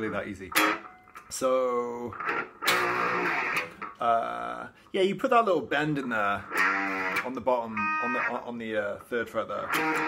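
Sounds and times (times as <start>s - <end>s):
electric guitar notes: 0.0s - 4.0s, 6.4s - 8.4s, 9.6s - 10.0s.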